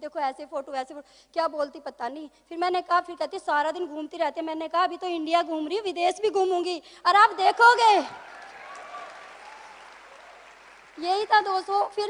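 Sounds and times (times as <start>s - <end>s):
audience applause: 7.6s - 12.0s.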